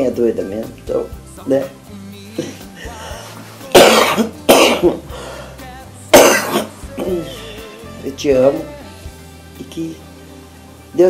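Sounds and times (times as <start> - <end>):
faint background music: 0.0 - 11.0
elderly woman coughing: 3.7 - 5.0, 6.1 - 7.2.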